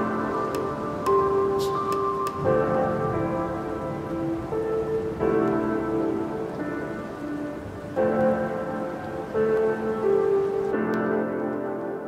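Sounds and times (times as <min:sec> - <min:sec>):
lo-fi music soft chords: 0:00.0 - 0:12.0.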